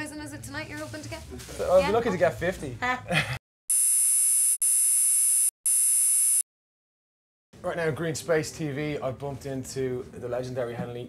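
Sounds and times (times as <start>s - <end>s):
buzzing electronic tones: 3.7s - 6.4s.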